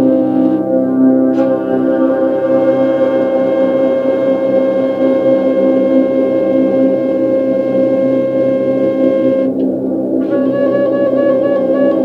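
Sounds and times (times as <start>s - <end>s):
ambient synthesizer and flute drone: 0.0s - 12.0s.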